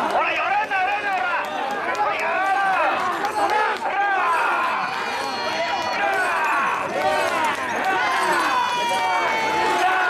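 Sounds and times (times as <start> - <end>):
crowd chanting and shouting: 0.0 - 10.0.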